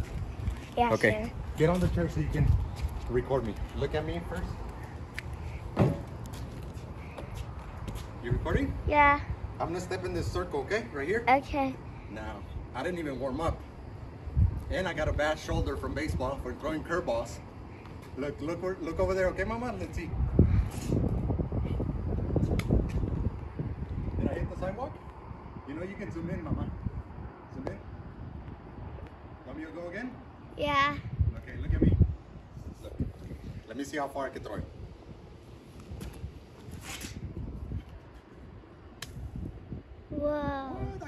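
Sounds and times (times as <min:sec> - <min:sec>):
wind buffeting microphone: 0:00.0 - 0:10.9, 0:11.8 - 0:17.7, 0:18.3 - 0:41.0.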